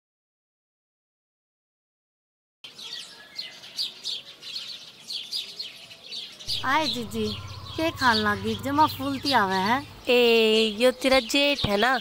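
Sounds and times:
birds chirping: 2.6 - 12.0.

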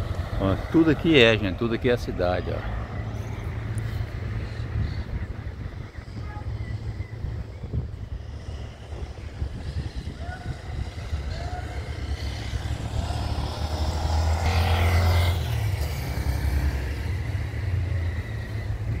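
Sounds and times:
motor vehicle passing: 0.0 - 19.0.

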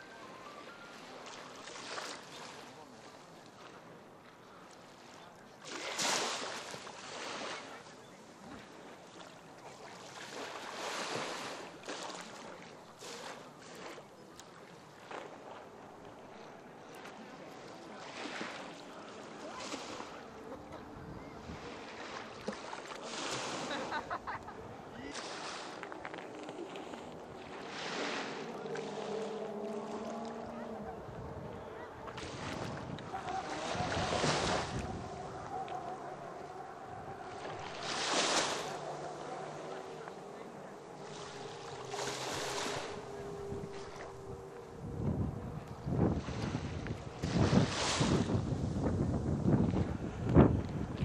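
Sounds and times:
small waves lapping on sand: 0.0 - 51.0
people talking: 16.3 - 21.7, 29.9 - 44.2.

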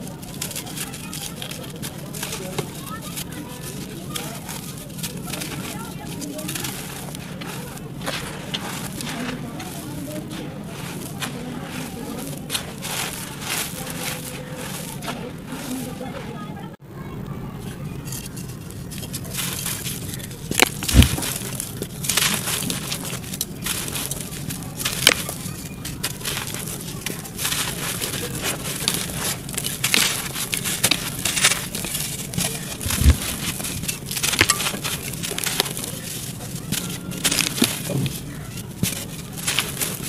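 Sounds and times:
crunch and thud: 0.0 - 16.2, 18.1 - 40.0
clay lumps crumbling: 0.0 - 16.8, 17.4 - 40.0
crumbs pattering onto dirt: 0.0 - 16.8, 17.7 - 40.0.

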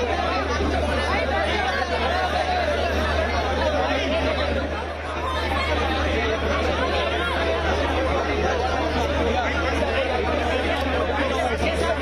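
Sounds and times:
babble of men's voices: 0.0 - 12.0.

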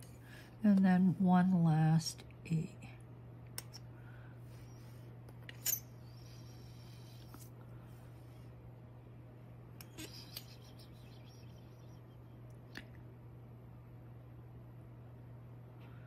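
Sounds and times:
low steady hum: 0.0 - 16.0.

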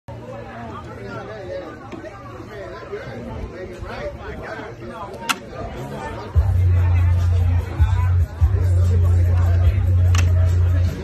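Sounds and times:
overlapping chatter: 0.1 - 11.0.

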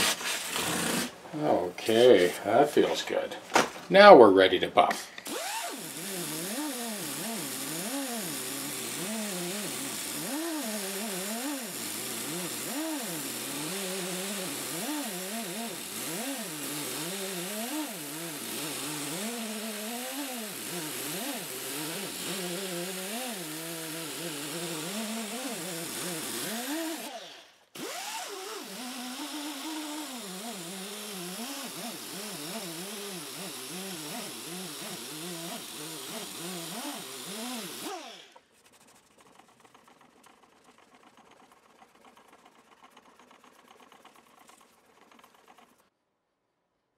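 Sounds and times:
motor-driven buffing wheel: 5.2 - 45.9.

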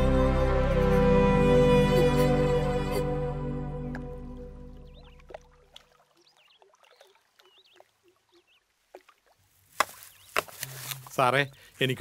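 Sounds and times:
small birds chirping: 4.8 - 5.3, 6.2 - 8.7, 9.9 - 11.9.

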